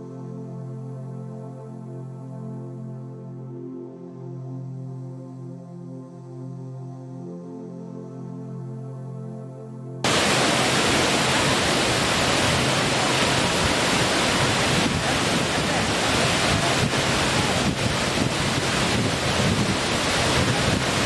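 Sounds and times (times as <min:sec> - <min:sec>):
water rushing: 0:10.1 - 0:21.0.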